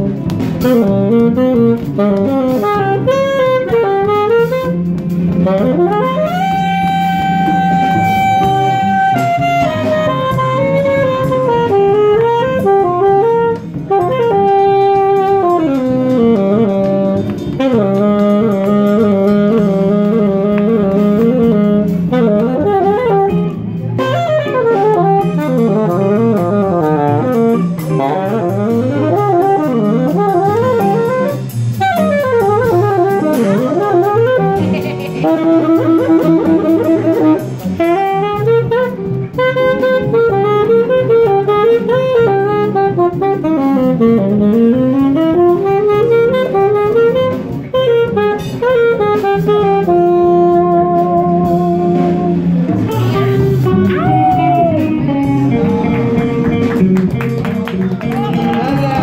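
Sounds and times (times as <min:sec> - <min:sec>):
low band accompaniment: 0:00.0 - 0:59.0
saxophone solo: 0:00.0 - 0:59.0.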